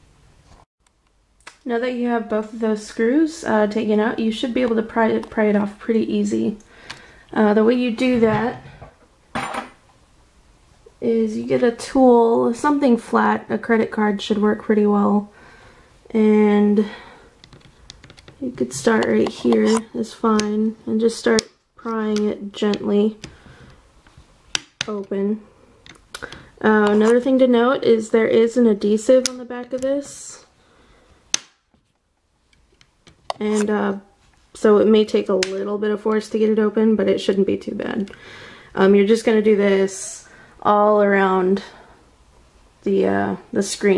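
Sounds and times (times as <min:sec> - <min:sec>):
sharp plastic snap: 0:31.3 - 0:31.7.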